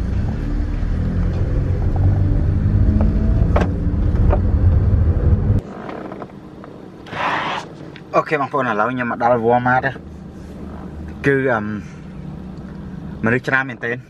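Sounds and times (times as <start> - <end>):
engine and road rumble: 0.0 - 14.0.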